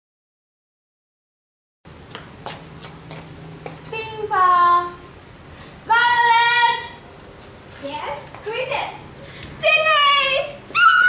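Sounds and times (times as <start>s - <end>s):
girl calling a name: 3.9s - 5.1s, 5.9s - 7.0s.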